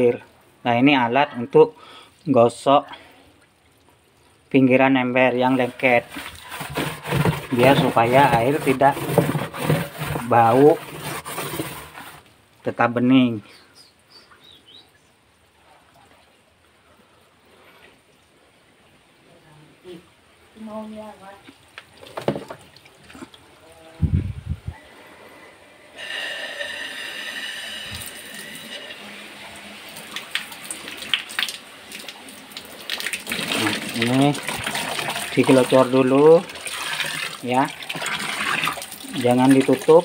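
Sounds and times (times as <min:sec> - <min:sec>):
hose water running into bucket: 0:04.5 - 0:12.3, 0:25.9 - 0:40.0.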